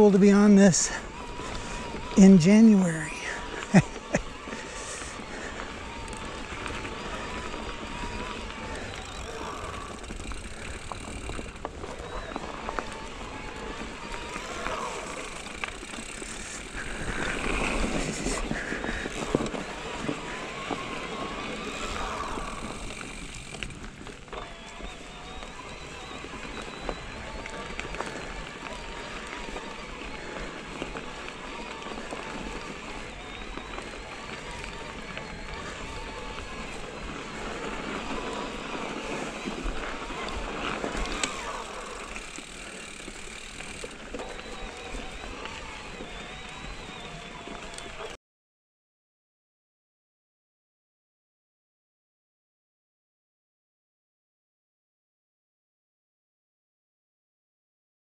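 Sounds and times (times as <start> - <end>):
bike rattling: 0.0 - 48.2
mountain bike tyres on dirt: 0.0 - 48.2.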